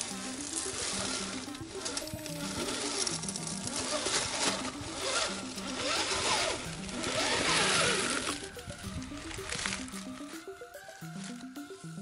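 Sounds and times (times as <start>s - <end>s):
background music with bass line: 0.0s - 12.0s
electric motor whining: 0.0s - 12.0s.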